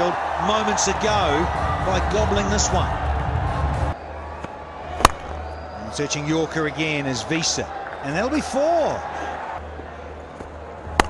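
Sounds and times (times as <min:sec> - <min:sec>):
stadium crowd murmur: 0:00.0 - 0:11.0
bat striking ball: 0:05.0 - 0:05.4.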